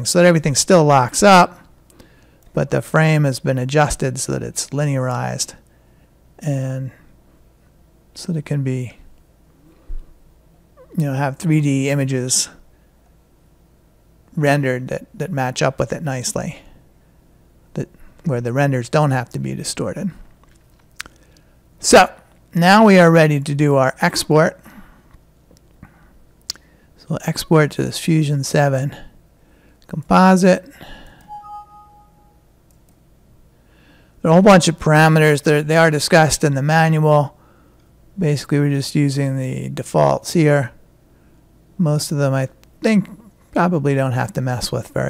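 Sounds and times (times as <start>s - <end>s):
two-tone computer alert chime: 31.3s - 32.4s.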